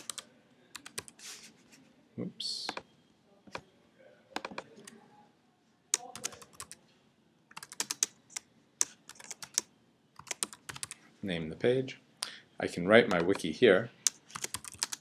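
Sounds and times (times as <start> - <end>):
computer keyboard keystrokes: 0.8 - 1.1, 6.0 - 6.8, 7.5 - 11.0, 14.0 - 15.0.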